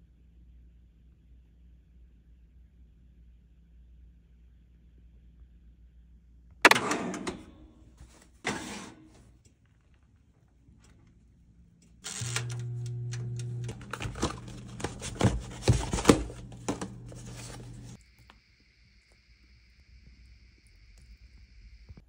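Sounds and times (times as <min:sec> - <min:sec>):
steady low hum: 0:11.1 - 0:21.9.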